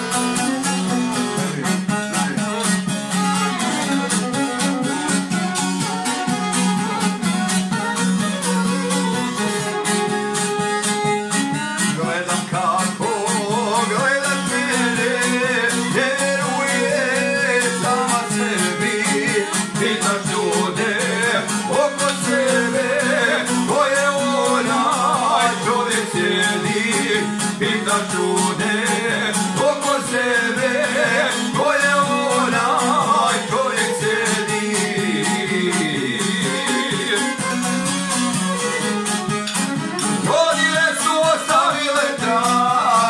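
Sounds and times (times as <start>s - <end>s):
plucked lute strumming: 0.0s - 43.0s
violin melody: 0.0s - 43.0s.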